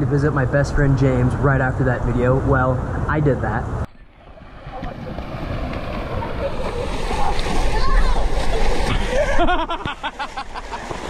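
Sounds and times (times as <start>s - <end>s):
people splashing through water: 4.1s - 11.0s.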